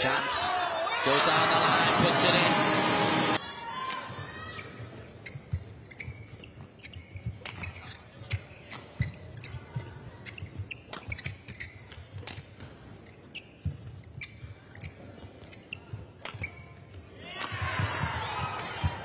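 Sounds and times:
crowd and commentary noise: 0.0 - 3.6
shoes squeaking on court: 4.5 - 17.0.

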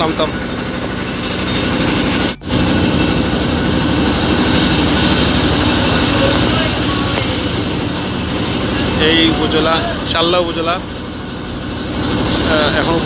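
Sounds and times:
boat engine throbbing: 0.0 - 13.0.

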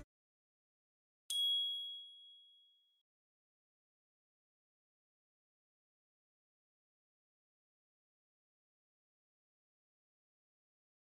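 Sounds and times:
bright high chime: 1.3 - 2.9.

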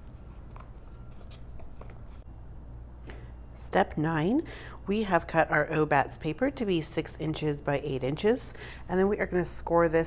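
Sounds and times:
paper being folded: 0.0 - 2.2
low steady hum: 0.0 - 10.0.

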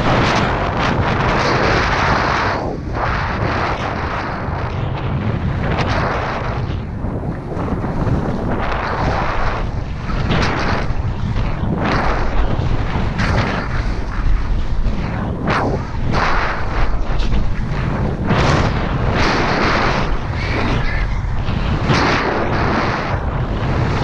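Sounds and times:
snowboard scraping over snow: 0.0 - 24.0
wind buffeting microphone: 0.0 - 24.0.

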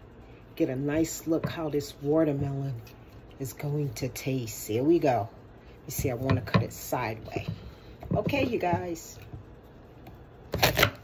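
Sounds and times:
knife cutting watermelon: 10.5 - 11.0.

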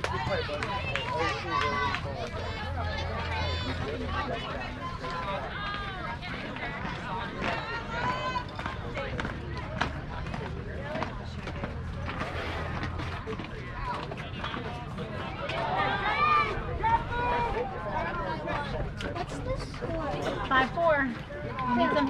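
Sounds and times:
distant people talking and calling: 0.0 - 22.0.

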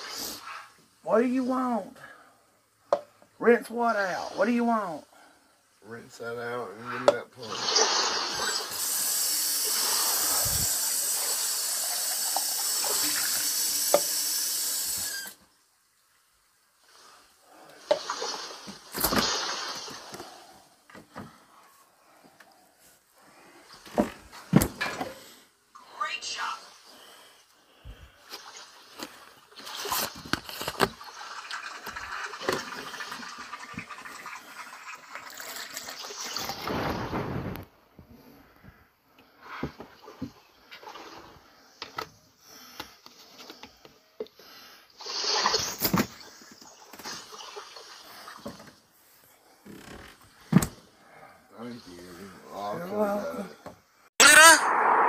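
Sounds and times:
water running from tap: 7.4 - 15.4, 30.9 - 36.6.

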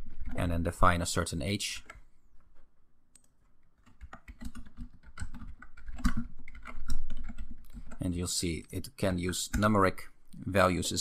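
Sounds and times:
keyboard typing: 3.1 - 8.1, 9.4 - 9.9.

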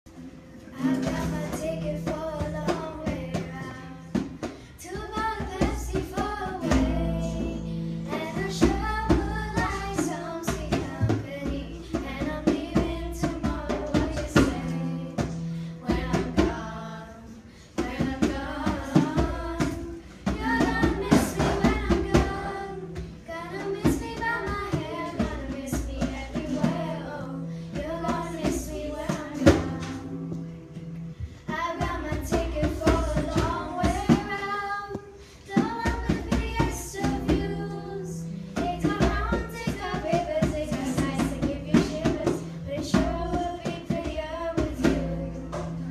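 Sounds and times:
girl singing: 0.2 - 45.9.

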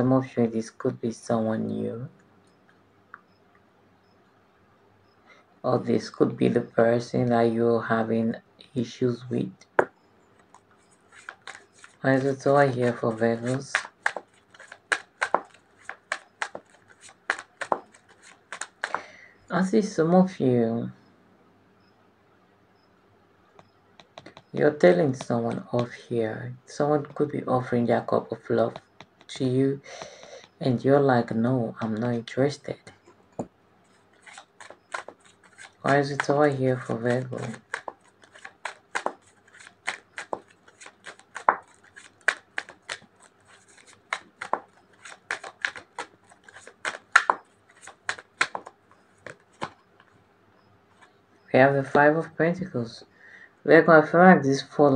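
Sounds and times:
rustling: 10.2 - 19.2, 32.8 - 50.2.

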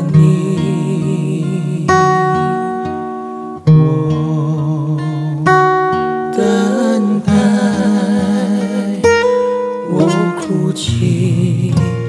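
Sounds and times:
man singing with vibrato: 0.0 - 2.9, 3.7 - 12.0
acoustic guitar: 0.0 - 12.0.

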